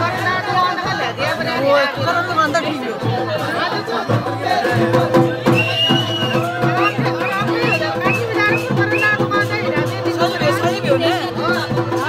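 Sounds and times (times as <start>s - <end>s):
crowd chatter: 0.0s - 12.0s
festive folk music: 0.0s - 12.0s
quick steady drum beat: 0.0s - 12.0s.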